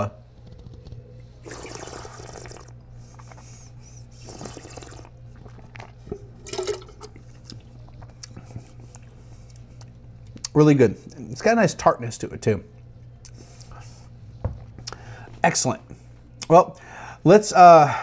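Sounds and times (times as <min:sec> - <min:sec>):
spitting into metal cup: 0:01.4 - 0:02.7, 0:04.2 - 0:07.2
person slurping wine: 0:01.4 - 0:03.4, 0:04.1 - 0:07.3.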